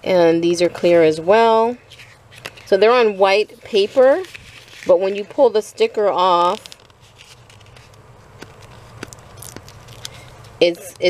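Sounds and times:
low steady hum: 0.0 - 11.0
paper rustling: 1.9 - 5.6, 6.2 - 10.6.

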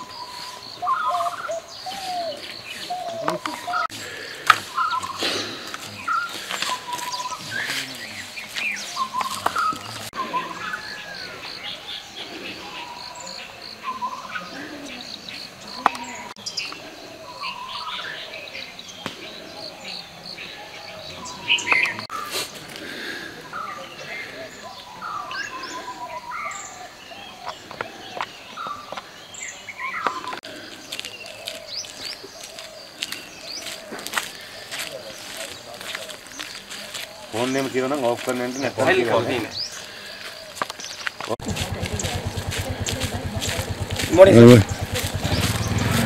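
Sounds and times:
birds chirping and singing: 0.0 - 46.0.

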